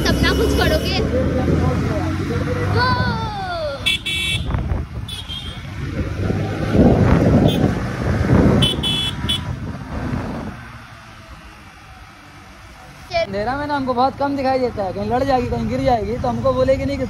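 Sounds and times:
motorcycle engine and road rumble: 0.0 - 17.0
vehicle horn beeps: 3.9 - 5.7, 8.6 - 9.5.

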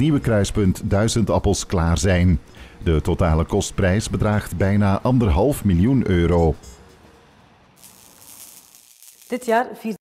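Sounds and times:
higher hiss: 7.8 - 9.6.

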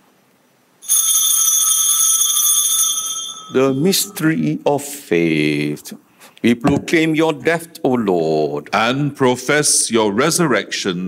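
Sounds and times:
altar bell ringing: 0.8 - 4.5.

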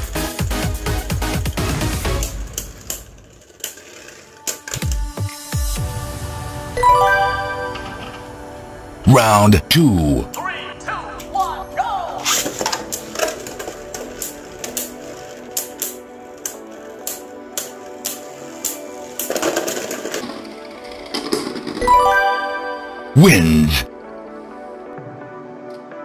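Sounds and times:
background music: 0.0 - 26.0
rising chime-like tones: 6.8 - 8.4, 21.8 - 23.1.

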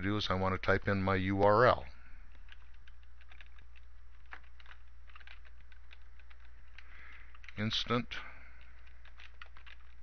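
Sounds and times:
low electrical hum: 0.0 - 10.0
computer keyboard typing: 2.1 - 10.0.

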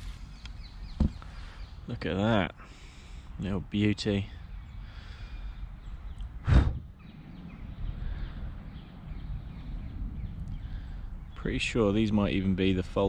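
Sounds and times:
low wind rumble: 0.0 - 13.0
puff on microphone: 6.4 - 7.0.

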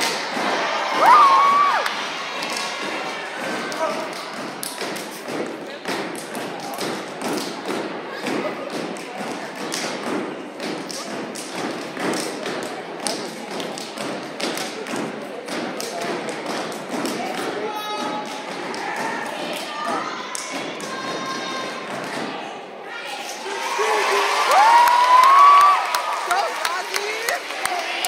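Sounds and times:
crowd voices: 0.0 - 28.0
dancers' footwork on stage: 0.2 - 22.4.

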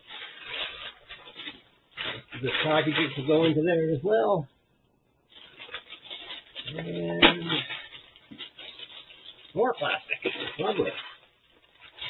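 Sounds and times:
plastic packaging crinkling: 0.0 - 3.8, 5.3 - 12.0.

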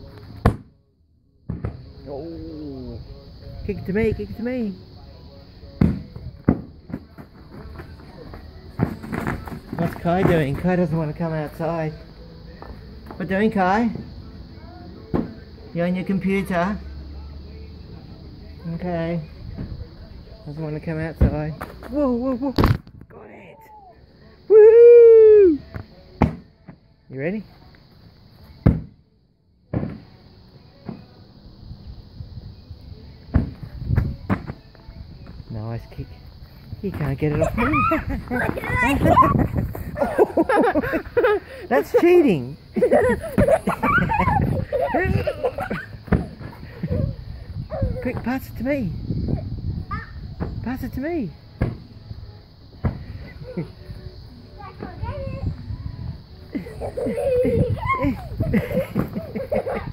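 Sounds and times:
beach ball kicked thumps: 1.5 - 1.8.

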